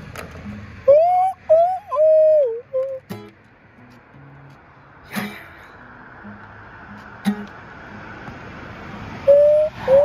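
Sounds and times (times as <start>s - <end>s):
person whistling a melody: 0.9s - 3.1s, 9.3s - 10.0s.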